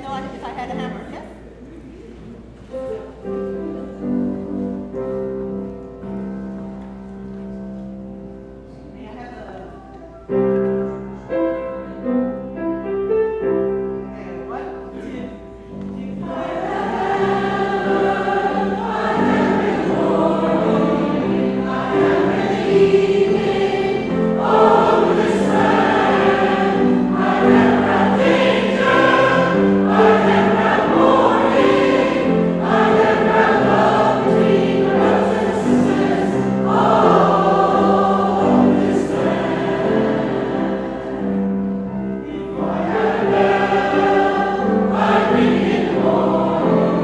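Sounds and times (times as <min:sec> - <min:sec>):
grand piano accompaniment: 0:00.0 - 0:47.0
mixed choir singing in harmony: 0:14.9 - 0:47.0.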